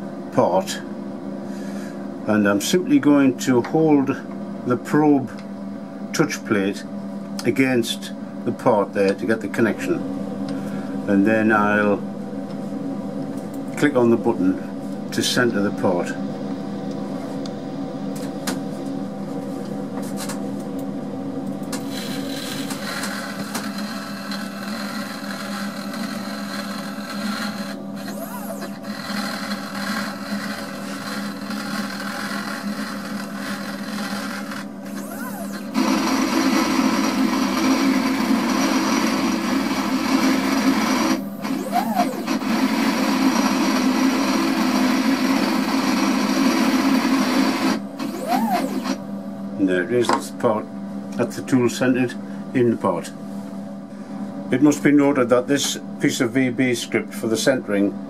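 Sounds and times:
stepper motors whining: 21.7s - 49.0s.

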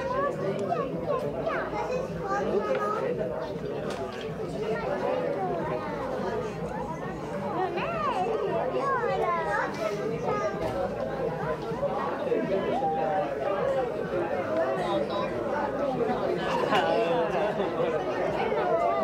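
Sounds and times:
overlapping chatter of voices: 0.0s - 19.0s.

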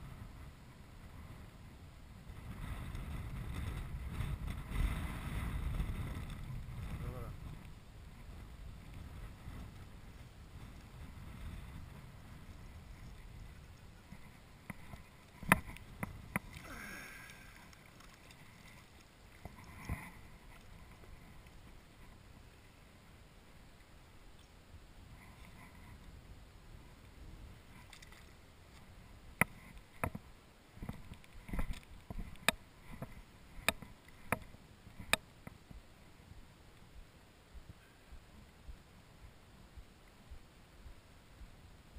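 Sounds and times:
water splashing and sloshing: 10.5s - 22.8s, 27.0s - 35.1s.

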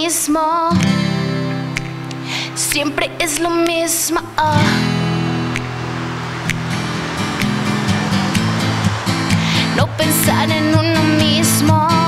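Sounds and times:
acoustic guitar strumming chords: 0.7s - 12.0s.

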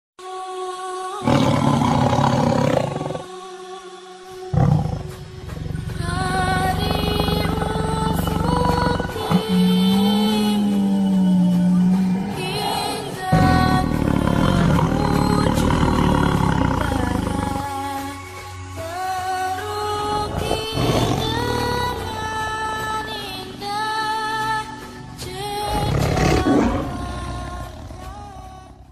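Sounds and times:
background music: 0.2s - 28.9s
tiger roaring: 1.2s - 3.3s, 4.6s - 17.7s, 20.0s - 23.0s, 25.7s - 28.5s.

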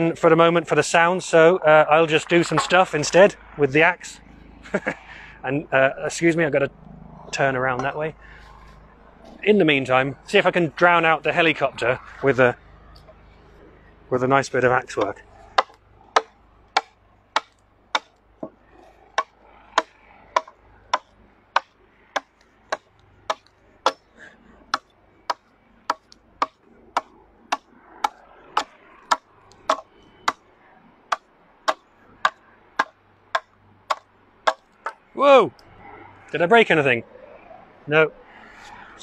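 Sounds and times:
axe hewing wood: 14.9s - 30.4s, 31.1s - 35.0s.

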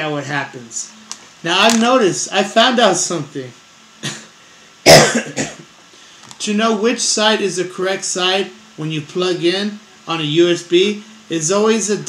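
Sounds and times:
man coughing into microphone: 4.0s - 5.7s.

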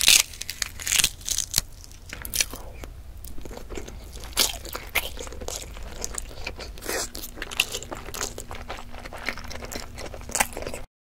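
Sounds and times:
chewing egg mouth sounds: 0.1s - 10.9s.

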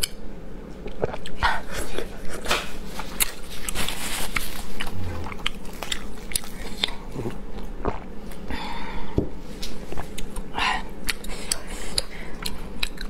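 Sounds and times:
mouth chewing meat: 0.8s - 8.4s, 9.9s - 13.0s.

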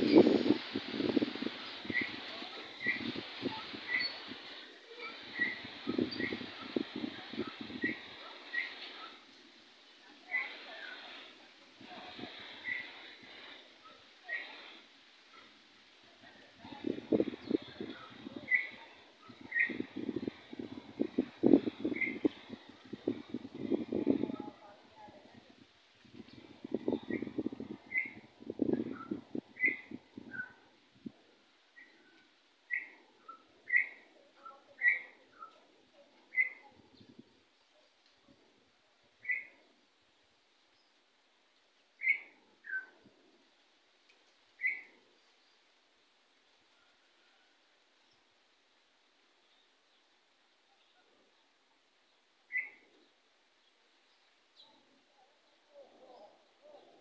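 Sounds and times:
faint outdoor background: 0.0s - 57.0s
short whistled calls: 1.1s - 9.2s, 11.9s - 15.5s, 16.7s - 24.5s, 26.6s - 30.7s, 31.8s - 35.6s, 36.3s - 36.7s, 39.2s - 39.6s, 42.0s - 43.0s, 44.6s - 45.0s, 52.5s - 52.9s
higher bird chirp: 17.2s - 22.6s, 52.5s - 52.9s.

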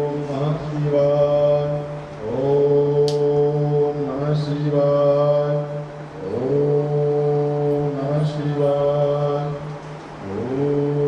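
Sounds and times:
person chanting held notes: 0.0s - 11.0s.

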